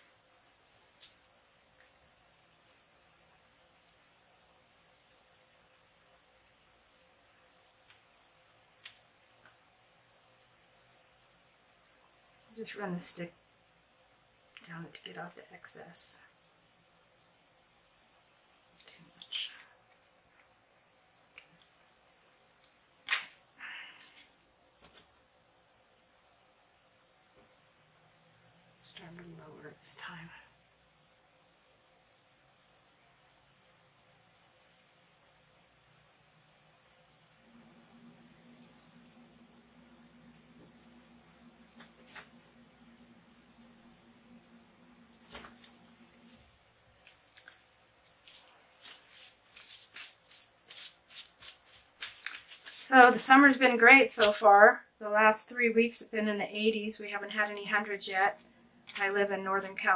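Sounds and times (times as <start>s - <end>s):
dry scratchy rustles: 45.2s - 54.4s.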